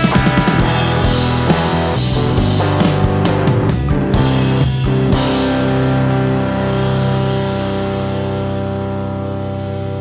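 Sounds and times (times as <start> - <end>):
electric guitar chord ringing: 0.0 - 10.0.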